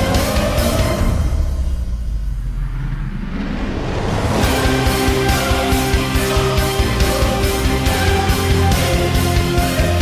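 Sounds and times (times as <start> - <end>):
low bass rumble: 1.1 - 7.5.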